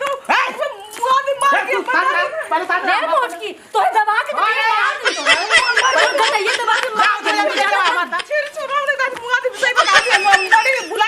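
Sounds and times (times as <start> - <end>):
women shouting and crying out: 0.0 - 11.0
laugh-like shrieks: 9.8 - 11.0.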